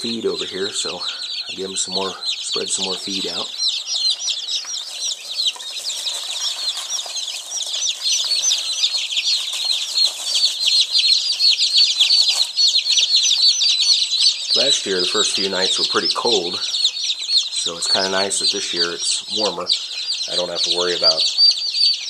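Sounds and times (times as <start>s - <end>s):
chicks peeping: 0.0s - 22.0s.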